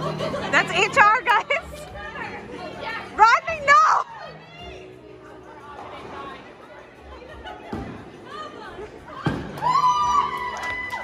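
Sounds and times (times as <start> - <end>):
low chatter: 0.0 - 11.0.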